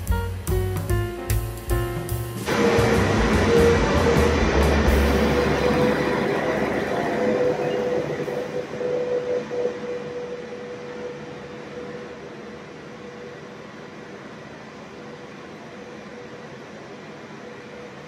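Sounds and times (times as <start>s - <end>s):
jazz music: 0.0s - 9.2s
machinery rumble and whine: 0.0s - 18.0s.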